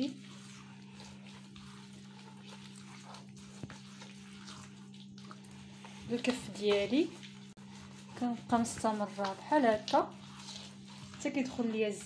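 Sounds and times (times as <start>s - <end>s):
hand squishing mixture in bowl: 0.0s - 12.0s.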